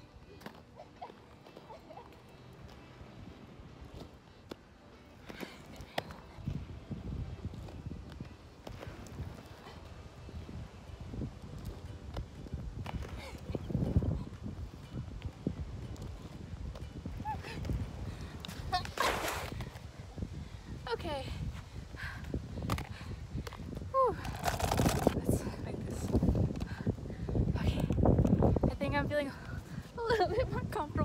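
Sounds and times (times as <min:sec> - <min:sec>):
skate wheels rolling on concrete: 0:00.0 - 0:31.0.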